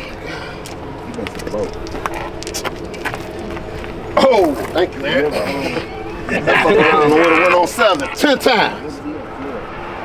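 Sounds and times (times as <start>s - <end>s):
quiet men's voices: 0.0s - 9.8s
steady hum: 0.0s - 10.0s
dice clattering on asphalt: 0.6s - 3.7s.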